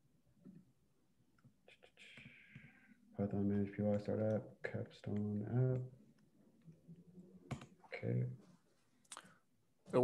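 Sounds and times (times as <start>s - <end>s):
faint keyboard clicks: 3.8s - 6.8s.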